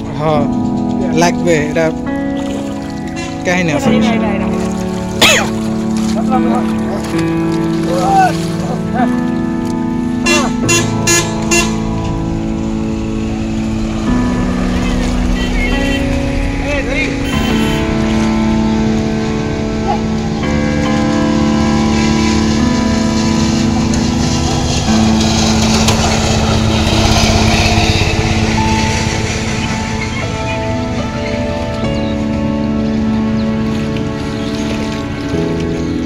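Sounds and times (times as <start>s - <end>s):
music with long held notes: 0.0s - 36.0s.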